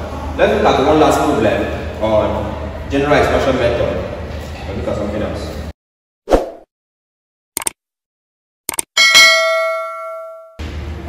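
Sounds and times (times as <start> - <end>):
bright bell ding: 9.0 - 10.6.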